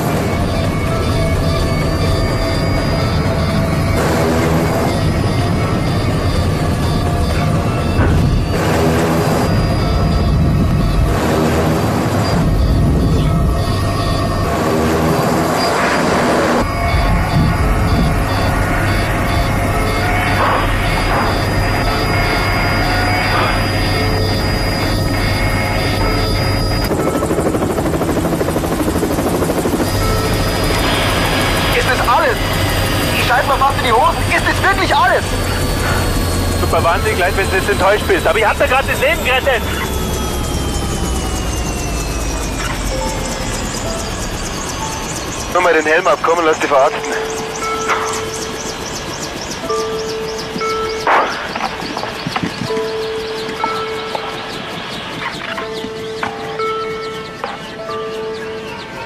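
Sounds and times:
dramatic music: 0.0 - 59.0
fast high-pitched warning beep: 0.0 - 59.0
helicopter engine and rotor: 0.0 - 59.0.

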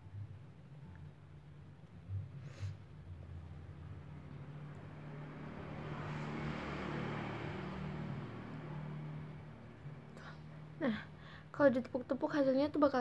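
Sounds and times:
road vehicle passing by: 2.2 - 11.5.

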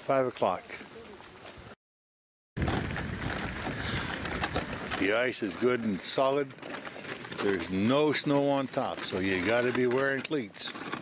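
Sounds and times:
wind blowing across microphone: 2.6 - 5.4.

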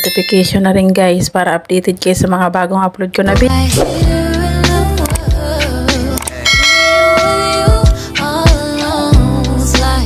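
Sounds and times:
ringing bell chime: 0.0 - 0.7, 6.5 - 7.8
background music with a beat: 3.3 - 10.0.

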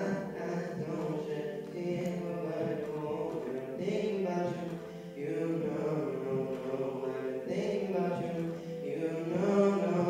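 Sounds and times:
boy singing into a microphone: 0.0 - 10.0.

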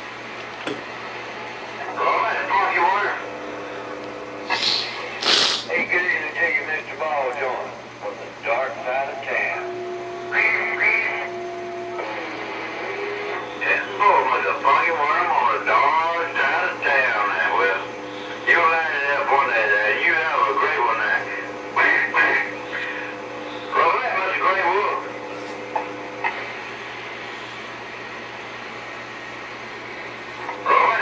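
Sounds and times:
steady radio tone: 1.7 - 31.0
garbled radio voices: 1.8 - 28.0, 29.9 - 31.0
radio noise burst: 1.8 - 31.0.

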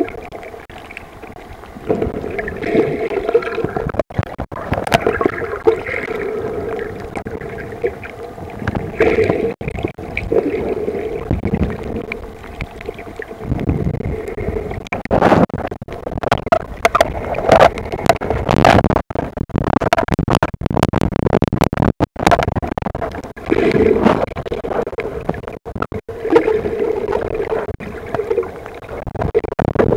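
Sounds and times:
muffled underwater sloshing: 0.0 - 21.4, 22.2 - 29.9.

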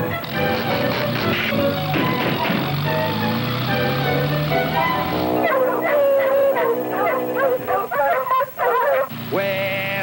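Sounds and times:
cartoon dogs yelping and howling: 0.0 - 2.5, 3.8 - 9.1
orchestral music: 0.5 - 7.9.

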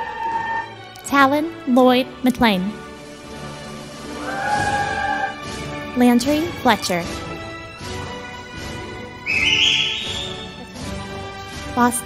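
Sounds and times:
high whistle rising in pitch: 0.0 - 0.8, 4.1 - 5.4, 9.2 - 10.6
instrumental background music: 0.0 - 12.0.

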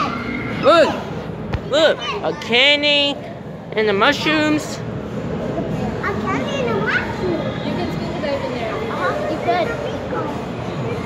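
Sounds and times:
children chattering: 0.0 - 3.3, 5.3 - 11.0.

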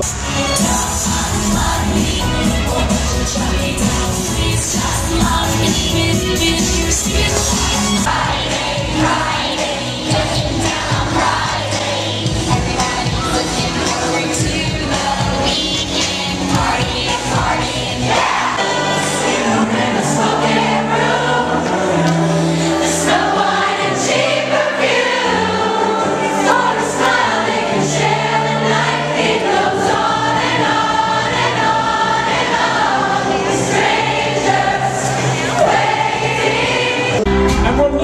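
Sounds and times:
choir singing: 0.0 - 37.3.

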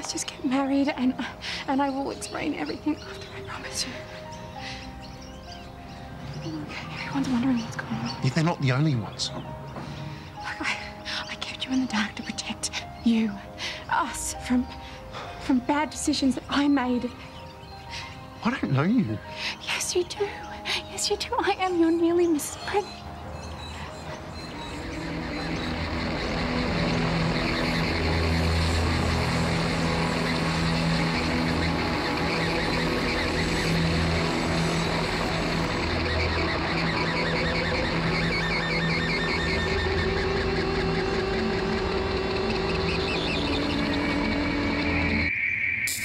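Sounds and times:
dramatic background music: 0.0 - 46.0.

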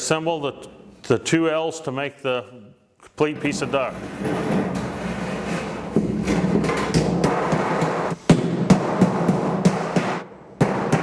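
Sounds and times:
hammer knocking on sheet metal: 5.9 - 11.0.

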